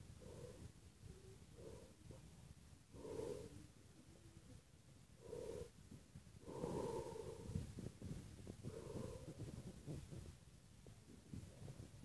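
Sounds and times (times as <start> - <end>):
person breathing close: 2.9 - 3.7, 5.2 - 10.2.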